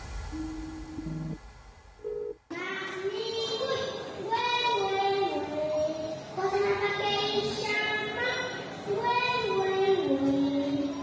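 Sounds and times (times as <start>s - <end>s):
girl singing: 2.5s - 11.0s.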